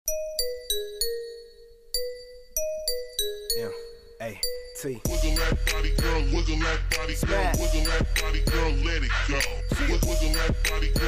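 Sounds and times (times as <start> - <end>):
bell-like chime melody: 0.1 - 5.6
hip hop beat: 0.1 - 11.0.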